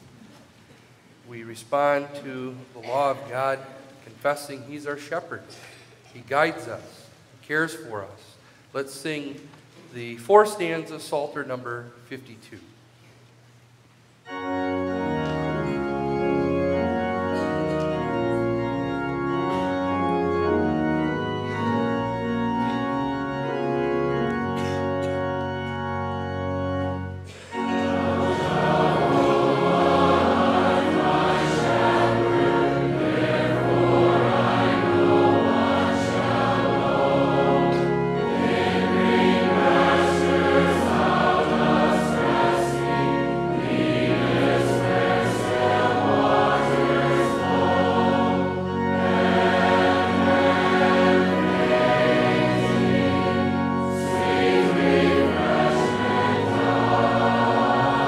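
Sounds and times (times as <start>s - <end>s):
organ playing chords: 14.2s - 58.0s
congregation singing in unison: 14.3s - 58.0s.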